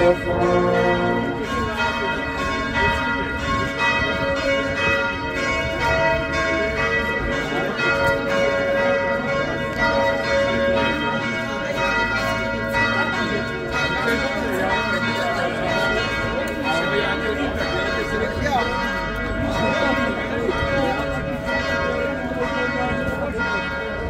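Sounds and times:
church bells pealing: 0.0 - 24.0.

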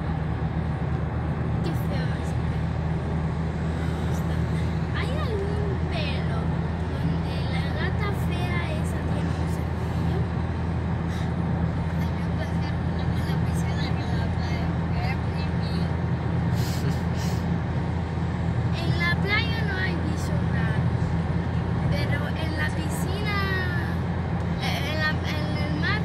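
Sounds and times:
car road and engine drone: 0.0 - 26.0
low hum: 0.0 - 26.0.

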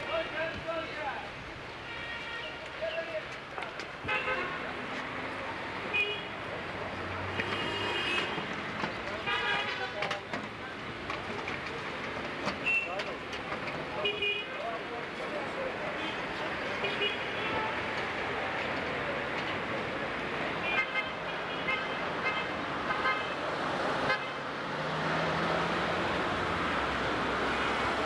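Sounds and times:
traffic noise: 0.0 - 28.0
voices of passers-by: 0.0 - 28.0.

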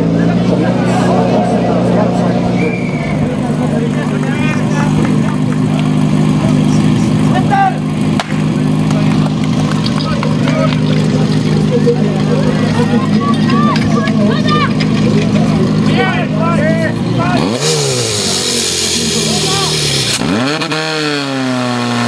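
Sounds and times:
voices: 0.0 - 20.7
pump engine running steadily: 3.3 - 16.3.

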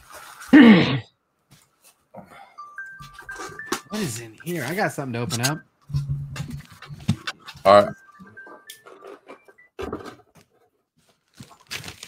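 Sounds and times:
cardboard box rustling: 11.1 - 12.0.

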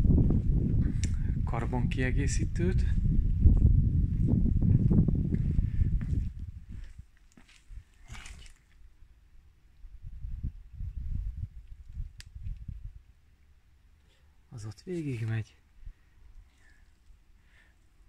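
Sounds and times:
footsteps on paved floor: 3.5 - 7.7.

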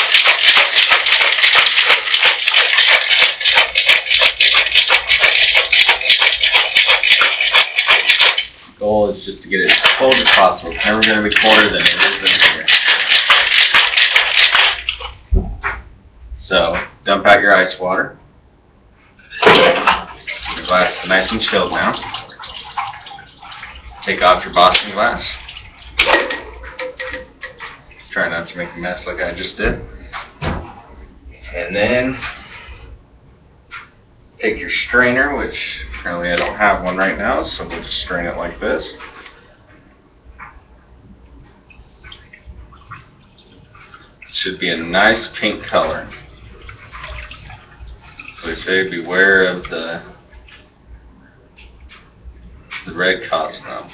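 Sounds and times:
ice rattling in cocktail shaker: 0.0 - 8.6, 9.6 - 15.0
glass clink: 26.3 - 27.3.

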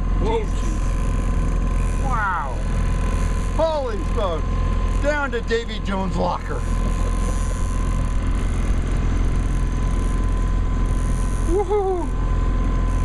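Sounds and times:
steady low rumble: 0.0 - 13.0
thin steady whine: 0.0 - 13.0.

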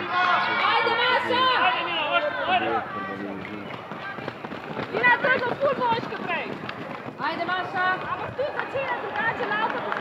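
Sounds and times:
runners' footfalls on a track: 2.8 - 10.0.

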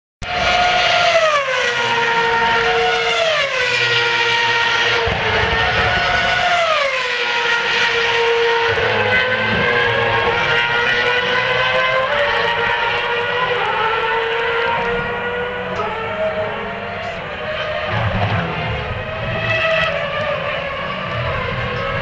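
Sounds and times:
racing car engines at high revs: 0.2 - 22.0.

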